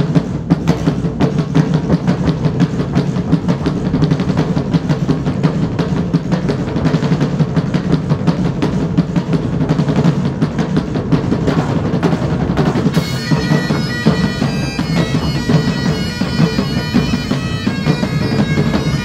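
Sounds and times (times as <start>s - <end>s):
drums in fast tribal rhythm: 0.0s - 19.0s.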